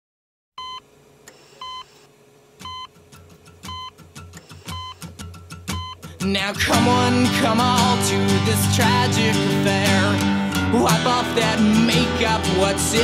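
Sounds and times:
heart monitor beeps: 0.6 - 3.0, 3.7 - 5.1, 5.7 - 6.0.

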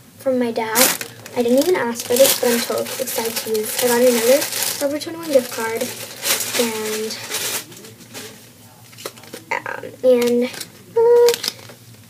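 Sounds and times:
paper rustling: 0.7 - 9.5.

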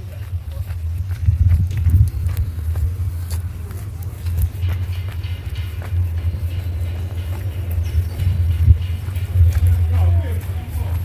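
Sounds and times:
faint voices: 0.0 - 11.0
low street rumble: 0.0 - 11.0.

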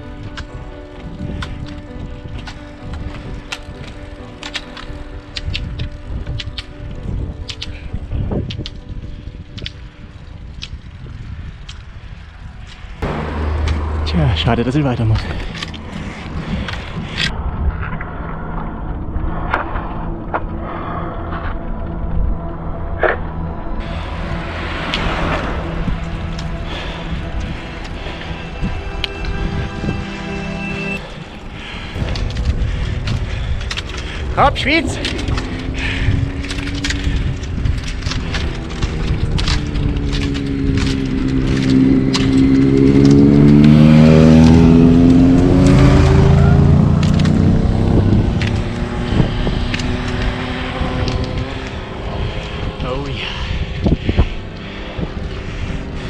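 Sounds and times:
vehicle engine passing: 13.0 - 15.8, 23.8 - 56.0.

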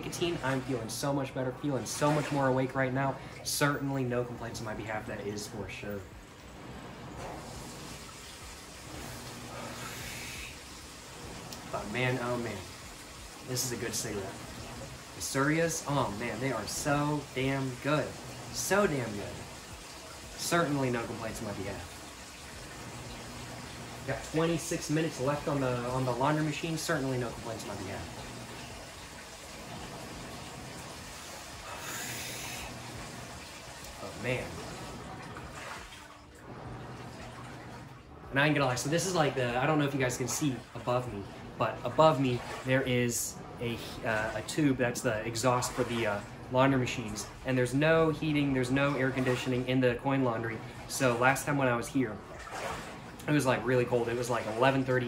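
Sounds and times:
laundry machines humming: 0.0 - 55.0
person inhaling and exhaling smoke: 31.6 - 32.8.

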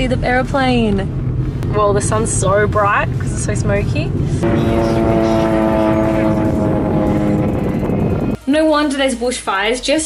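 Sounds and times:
propeller plane droning overhead: 3.0 - 8.4.

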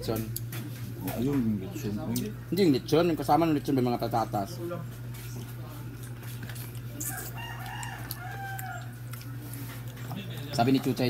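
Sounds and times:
steady low hum: 0.0 - 11.0
rooster crowing: 7.0 - 9.2.

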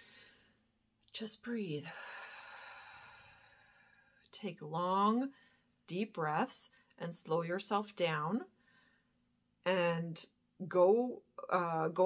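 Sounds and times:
woman breathing deeply: 0.0 - 0.7, 1.9 - 4.2, 8.6 - 9.2.

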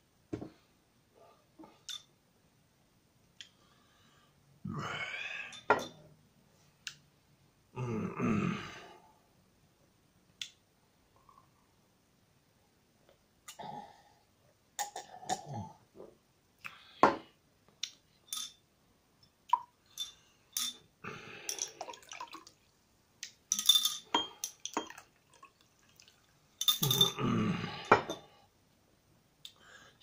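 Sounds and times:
glass clinks: 19.9 - 20.8, 21.5 - 22.0, 23.5 - 25.0, 26.6 - 27.2
soda pouring into a glass: 21.5 - 22.6, 24.6 - 26.3
liquid splashing: 21.6 - 22.7, 24.6 - 26.3.

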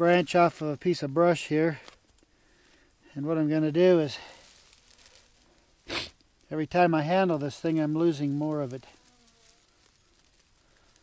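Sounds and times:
pine needles crunching: 0.0 - 11.0
pine needles rustling: 0.0 - 11.0.

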